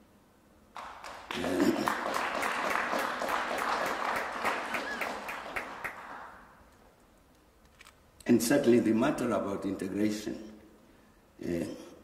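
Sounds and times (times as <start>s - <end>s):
audience applauding: 0.8s - 6.6s.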